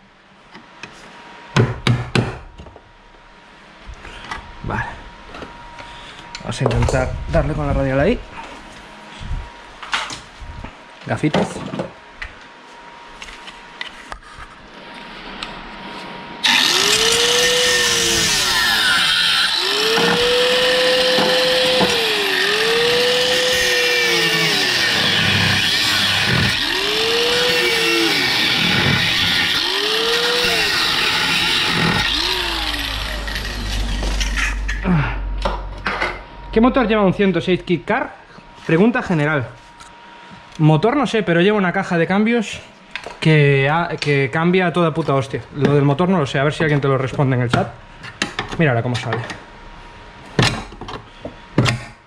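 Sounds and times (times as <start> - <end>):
angle grinder cutting sheet steel: 16.4 - 35.0.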